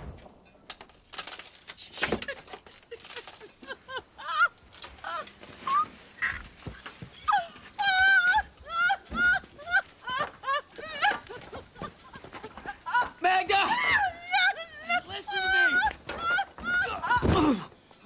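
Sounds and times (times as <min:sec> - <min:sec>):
woman whimpering and wailing: 0:07.2 - 0:11.7, 0:12.7 - 0:17.7.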